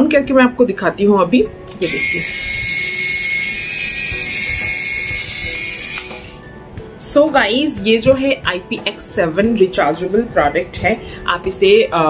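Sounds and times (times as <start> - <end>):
electric callus remover whine: 1.7 - 6.6.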